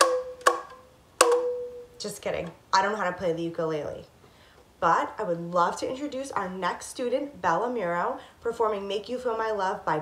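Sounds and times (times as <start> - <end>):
ukulele strums: 0.0 - 2.0.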